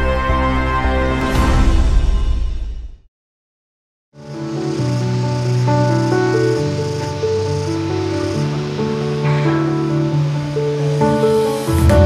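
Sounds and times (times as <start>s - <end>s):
soft sustained music chords: 4.2s - 12.0s.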